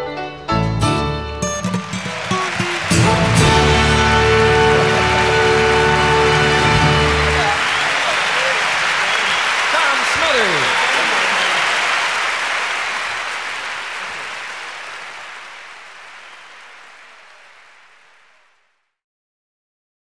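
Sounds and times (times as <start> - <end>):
audience applauding and cheering: 1.4 - 18.7
shouts from audience: 1.8 - 15.2.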